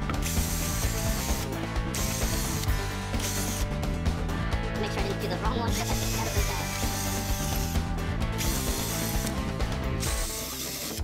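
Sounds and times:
electric drill boring wood: 0:00.0 - 0:03.7, 0:05.7 - 0:09.4, 0:10.0 - 0:11.0
background music: 0:00.0 - 0:11.0.

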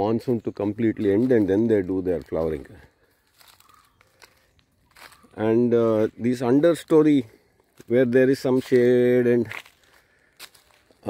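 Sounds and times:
footsteps on dry leaves: 0:00.1 - 0:11.0.

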